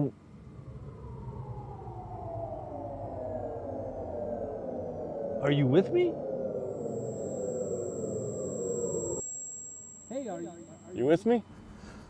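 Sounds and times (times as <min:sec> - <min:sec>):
siren-like descending tone: 0:06.7 - 0:11.0.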